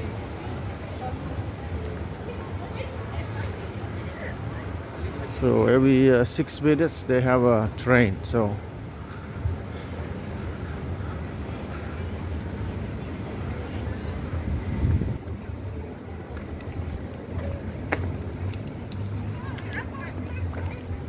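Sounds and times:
city background rumble: 0:00.0 - 0:21.0.

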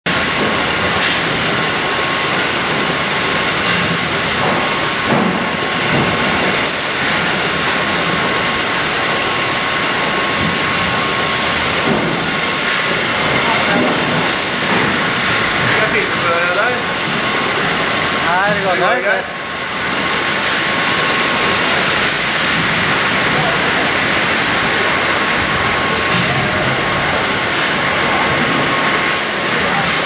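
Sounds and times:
conveyor machinery: 0:00.1 - 0:30.0
thin steady whine: 0:00.1 - 0:30.0.

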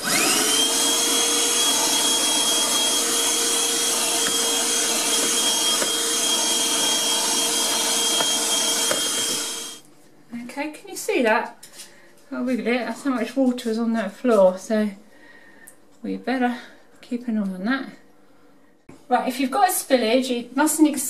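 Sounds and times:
handheld vacuum sucking water: 0:00.0 - 0:09.8.

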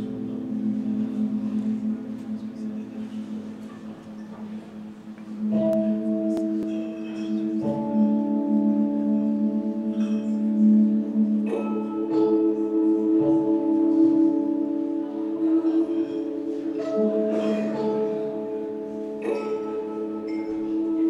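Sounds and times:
synthesized bell-like chord: 0:00.0 - 0:21.0.

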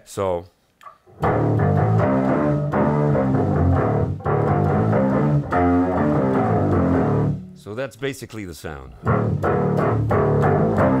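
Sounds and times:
overdriven electric guitar: 0:01.1 - 0:07.6, 0:09.0 - 0:11.0
deep bass notes: 0:01.2 - 0:07.6, 0:08.9 - 0:11.0.

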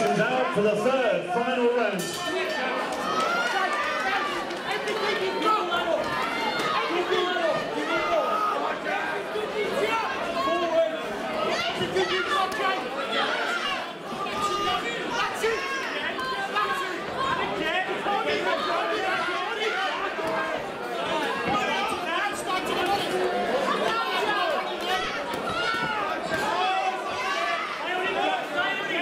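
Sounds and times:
crowd talking and calling out: 0:00.0 - 0:29.0.

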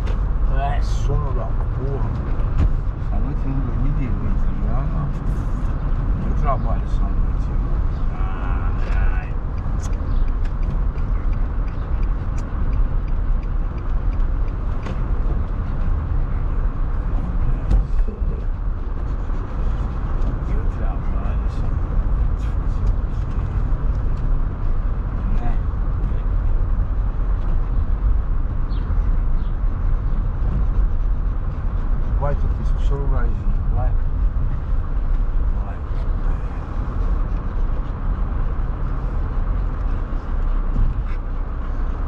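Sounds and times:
car cabin road and engine rumble: 0:00.0 - 0:42.0.

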